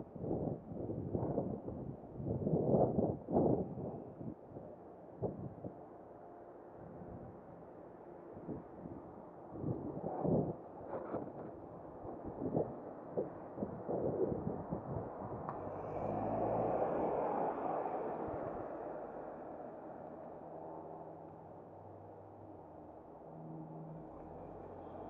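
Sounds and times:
wind buffeting microphone: 0.2 - 5.7, 8.4 - 19.4
car passing close by: 15.3 - 21.1.

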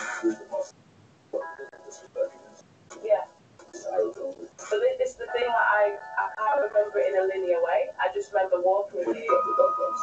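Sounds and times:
music: 0.0 - 0.7, 1.3 - 10.0
person speaking: 1.4 - 10.0.

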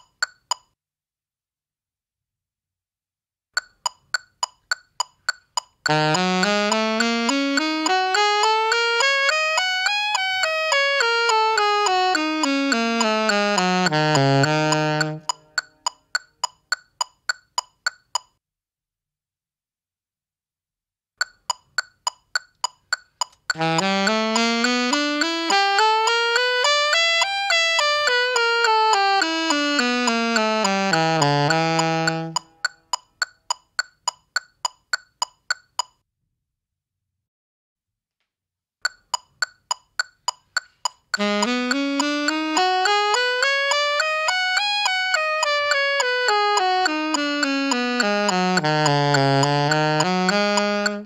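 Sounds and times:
metronome clicks: 0.0 - 0.8, 3.6 - 18.4, 21.2 - 36.0, 38.8 - 51.0
alto saxophone playing scale: 5.9 - 15.9, 23.5 - 32.9, 41.2 - 51.0.

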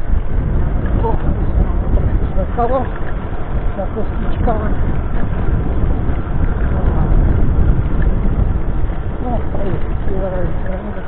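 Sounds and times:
scooter rattling over cobblestones: 0.0 - 11.0
wind rushing over microphone: 0.0 - 11.0.

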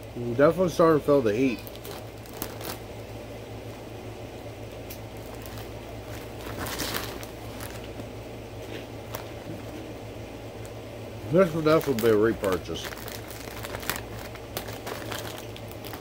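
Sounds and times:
steady low hum: 0.0 - 16.0
plastic bag crinkling: 1.3 - 3.0, 5.1 - 16.0
crunchy snack chewing: 11.6 - 16.0.

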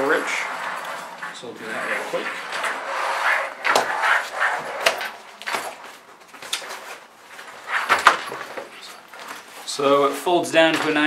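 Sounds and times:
fabric rustling and scraping: 0.0 - 10.4.

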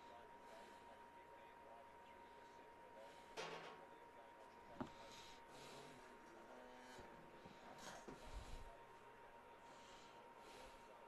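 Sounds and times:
faint steady tone: 0.0 - 11.0.

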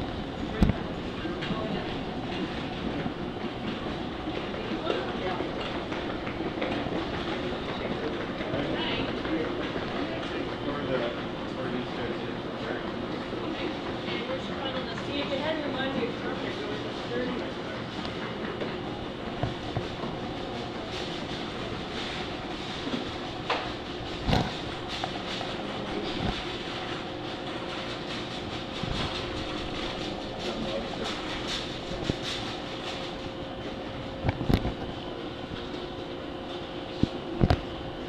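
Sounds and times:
indoor mechanical hum: 0.0 - 38.0.

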